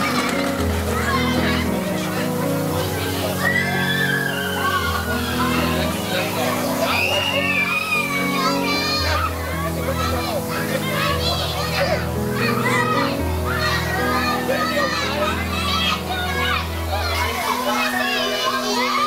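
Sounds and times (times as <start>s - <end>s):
music with held bass notes: 0.0s - 3.3s
children shouting and squealing: 0.0s - 19.0s.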